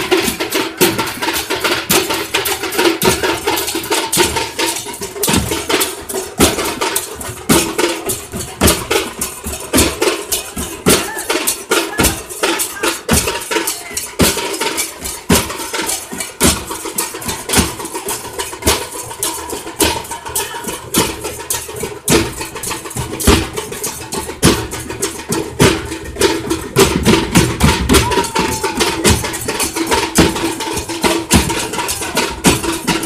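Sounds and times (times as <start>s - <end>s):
large drums beaten with sticks: 0.0s - 33.0s.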